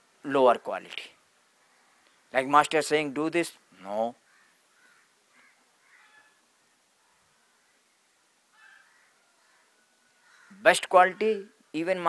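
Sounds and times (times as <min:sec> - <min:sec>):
faint bird calls: 0:01.6 - 0:02.3, 0:03.7 - 0:11.6.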